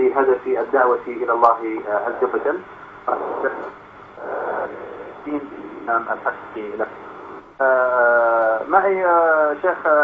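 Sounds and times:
man speaking on radio: 0.0s - 10.0s
breathy hiss: 2.0s - 7.5s.

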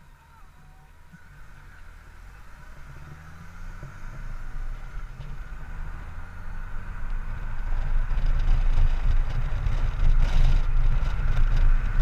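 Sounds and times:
motorcycle engine rumble: 0.0s - 12.0s
wind and road noise: 0.0s - 12.0s.

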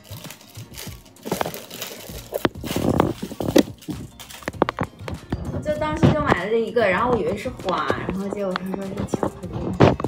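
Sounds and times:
cellophane crinkling: 0.0s - 5.7s.

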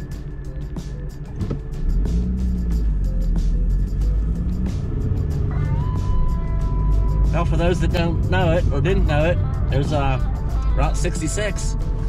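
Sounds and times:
car engine and road rumble: 0.0s - 12.0s
music playing: 0.0s - 12.0s.

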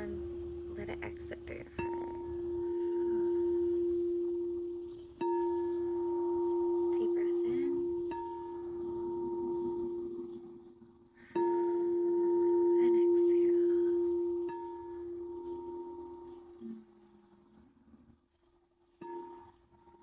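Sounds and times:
singing bowl struck with mallet: 0.0s - 10.7s
singing bowl ringing tone: 0.0s - 17.3s.

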